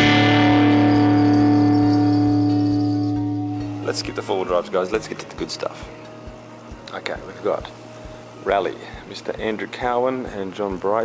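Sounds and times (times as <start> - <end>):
guitar chord ringing: 0.0 - 7.4.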